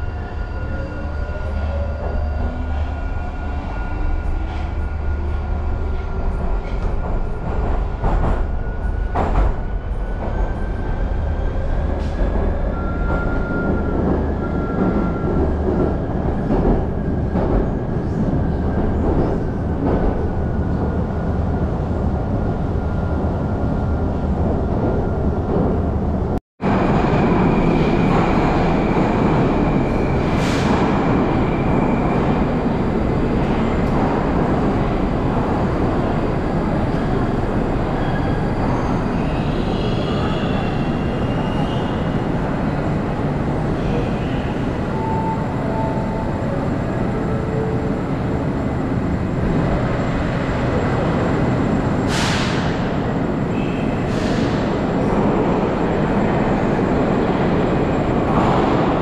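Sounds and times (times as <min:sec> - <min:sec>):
metro train rumbling in tunnel: 0:00.0 - 0:59.0
rushing train noise: 0:00.0 - 0:59.0.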